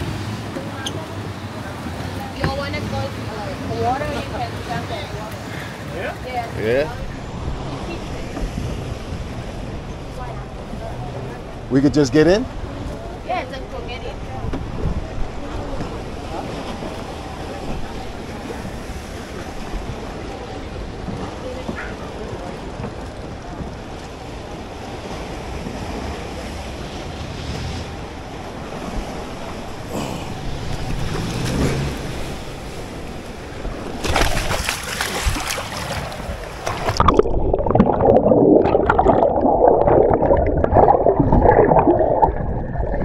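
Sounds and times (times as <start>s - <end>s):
sea water lapping: 0.0s - 43.0s
wind on microphone: 6.8s - 11.7s, 12.6s - 21.8s, 25.6s - 43.0s
water splashing: 27.4s - 43.0s.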